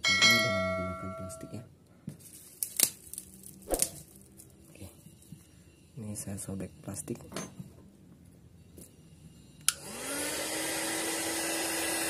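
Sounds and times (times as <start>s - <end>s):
thin plastic tearing and crinkling: 2.2s - 4.5s
heat gun humming: 9.6s - 12.0s.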